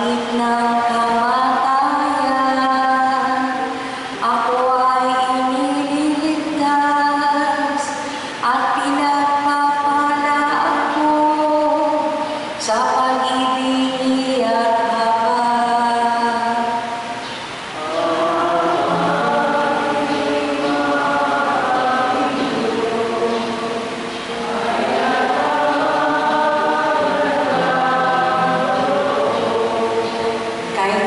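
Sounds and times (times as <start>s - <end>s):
woman singing chant-like melody: 0.0s - 16.9s, 17.8s - 31.0s.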